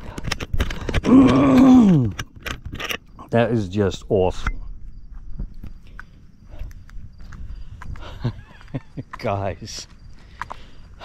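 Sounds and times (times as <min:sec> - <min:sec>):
man groaning: 0:01.1 - 0:02.1.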